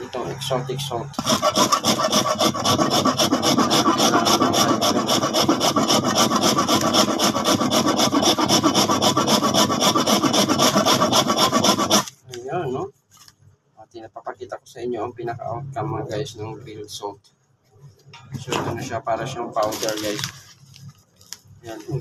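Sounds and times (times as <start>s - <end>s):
salt being grated by hand: 1.2s - 12.1s.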